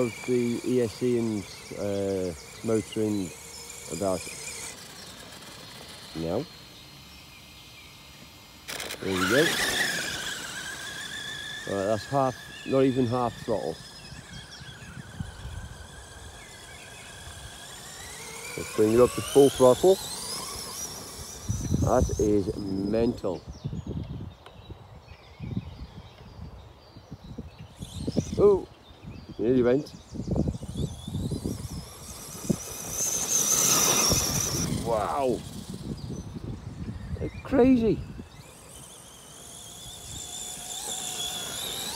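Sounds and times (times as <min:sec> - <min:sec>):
toy truck electric motor whine: 0:00.0 - 0:24.4, 0:25.1 - 0:41.9.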